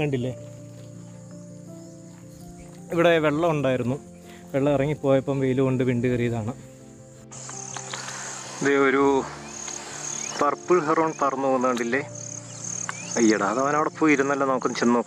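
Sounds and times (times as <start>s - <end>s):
insects chirring: 0.0s - 15.0s
soft background music: 0.0s - 15.0s.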